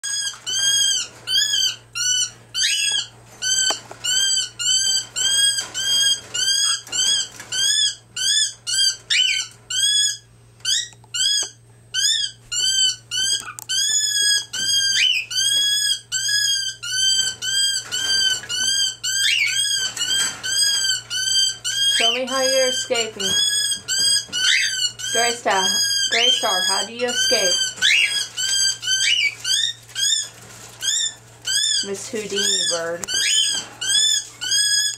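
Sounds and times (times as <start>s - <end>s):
cockatiel calling: 0.0s - 34.9s.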